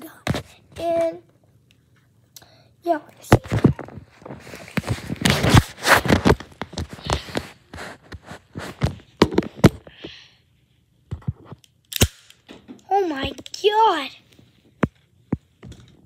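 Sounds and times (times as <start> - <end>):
phone handling rustling and scraping: 3.3 - 9.9
sharp crack: 11.9 - 12.5.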